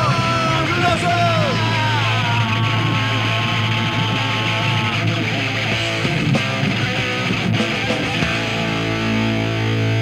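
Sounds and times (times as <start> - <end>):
punk rock song: 0.0 - 10.0.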